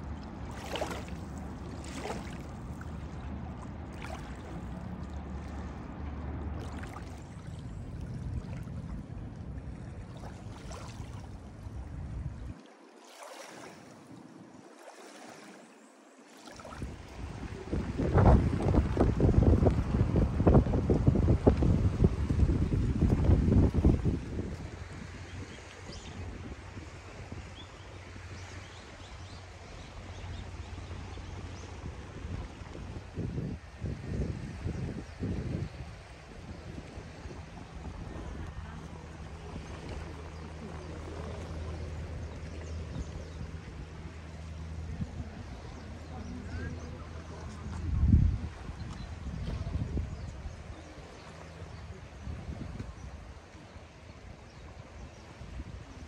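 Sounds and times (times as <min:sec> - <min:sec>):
small waves lapping: 0:00.0 - 0:56.0
wind buffeting microphone: 0:16.7 - 0:56.0.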